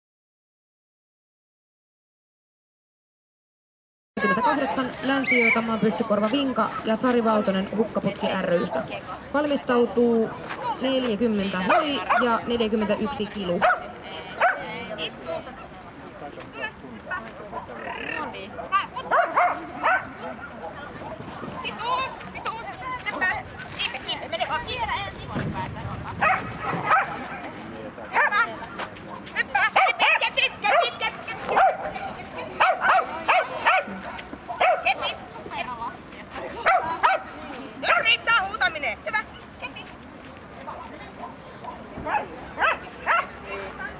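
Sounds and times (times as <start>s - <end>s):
dog yipping: 19.1s - 20.5s, 26.2s - 27.2s, 29.6s - 31.9s, 32.6s - 35.1s, 36.6s - 38.2s, 42.1s - 43.3s.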